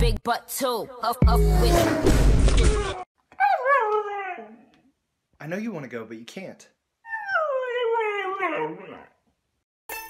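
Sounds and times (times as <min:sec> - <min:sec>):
husky howling cry: 0:02.9 - 0:04.7, 0:07.1 - 0:09.1.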